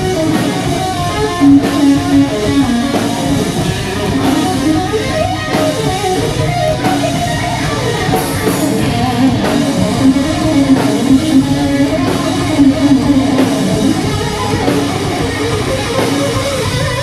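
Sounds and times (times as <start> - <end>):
drums: 0.0 - 17.0
electric guitar melodic run: 0.0 - 17.0.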